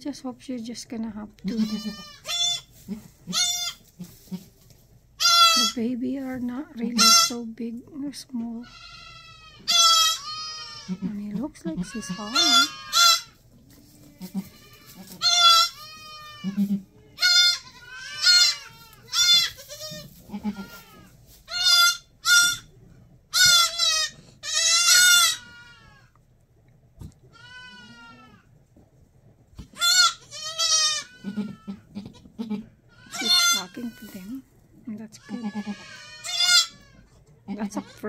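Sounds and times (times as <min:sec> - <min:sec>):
goat kids bleating: 0:01.4 - 0:04.6, 0:05.2 - 0:05.8, 0:06.9 - 0:07.4, 0:08.6 - 0:22.7, 0:23.3 - 0:26.2, 0:27.0 - 0:28.5, 0:29.6 - 0:34.4, 0:35.0 - 0:38.0.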